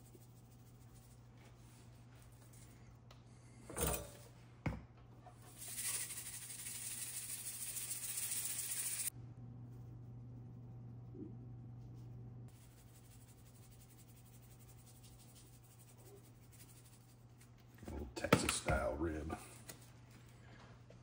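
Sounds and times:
salt grains falling: 5.6 - 9.1
low steady hum: 9.0 - 21.0.

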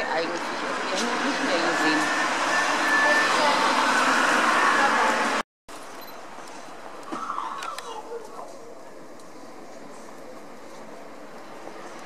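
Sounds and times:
distant city traffic: 0.0 - 12.0.

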